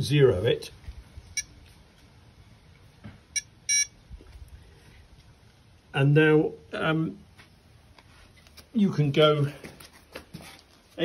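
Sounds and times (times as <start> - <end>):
short electronic beep: 3.4 - 4.0.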